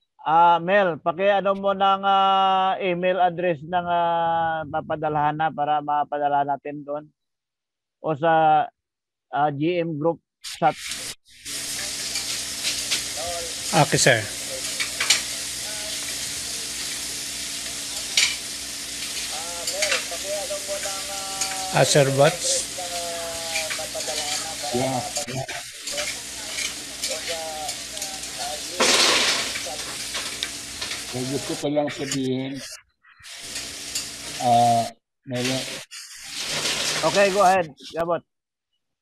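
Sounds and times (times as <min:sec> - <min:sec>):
crackle: 0:10.7 - 0:34.6, 0:35.4 - 0:38.0
steady hissing noise: 0:10.7 - 0:37.9.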